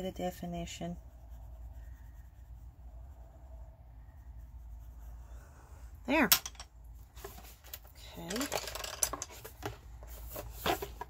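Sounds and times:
craft supplies clicking and tapping: 7.7 - 9.8.

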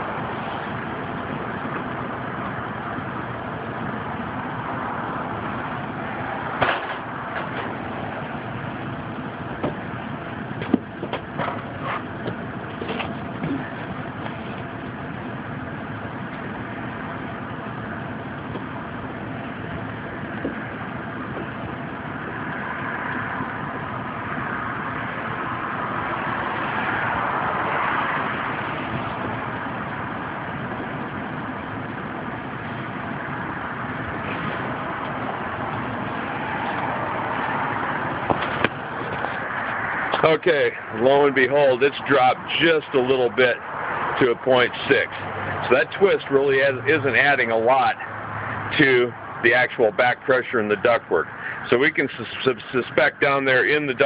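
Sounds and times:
air conditioning blower running: 0.0 - 54.0
sharp clicks and knocks: 9.6 - 9.8, 10.6 - 14.7, 38.2 - 39.4.

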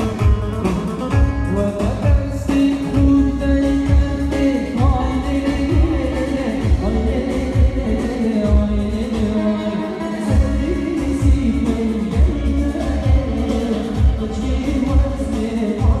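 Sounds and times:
heavy bass beat: 0.0 - 9.5, 10.3 - 16.0
person singing: 0.0 - 16.0.

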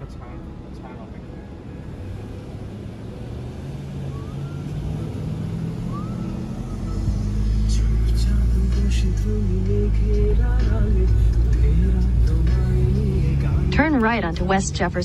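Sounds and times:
heavy low rumble: 0.0 - 15.0
road and engine noise in car: 0.0 - 15.0.

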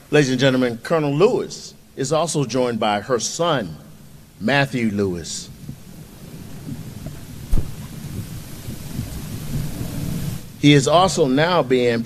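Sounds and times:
sharp thump: 7.0 - 7.9.

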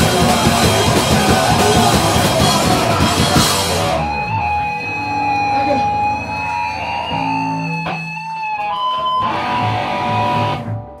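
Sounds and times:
electric guitar ringing notes: 0.0 - 11.0.

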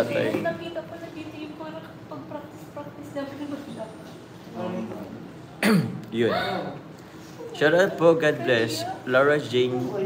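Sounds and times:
man coughing: 5.6 - 6.8.

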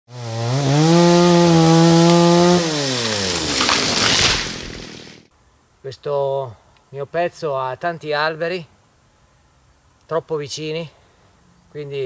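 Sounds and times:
chainsaw revving: 0.1 - 5.3.

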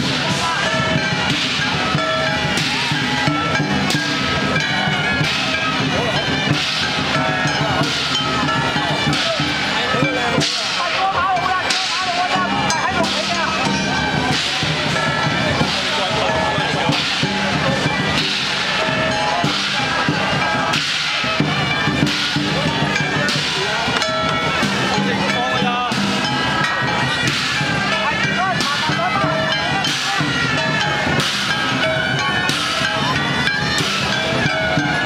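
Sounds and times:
cymbal crashes: 0.0 - 35.0
drumming: 0.0 - 35.0
gong: 0.0 - 35.0
parade music: 0.0 - 35.0.

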